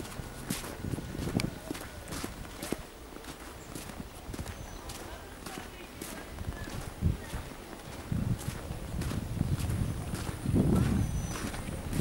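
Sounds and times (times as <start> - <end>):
footsteps in snow: 0.0 - 12.0.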